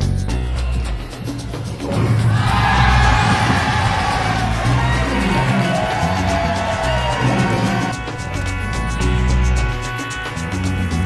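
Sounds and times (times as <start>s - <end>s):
music with steady beat: 0.0s - 11.0s
crowd cheering and yelling: 1.8s - 8.2s.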